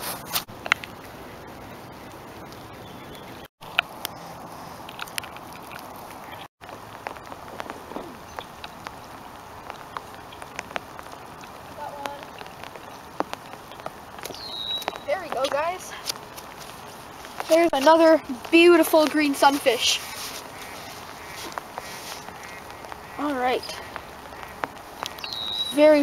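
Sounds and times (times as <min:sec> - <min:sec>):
light rain falling: 0:00.5 - 0:26.0.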